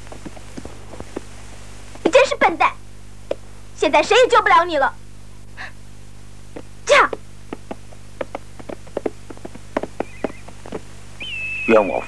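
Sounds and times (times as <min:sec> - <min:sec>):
horse hooves clopping on hard ground: 0:00.0 - 0:01.3, 0:06.6 - 0:11.0.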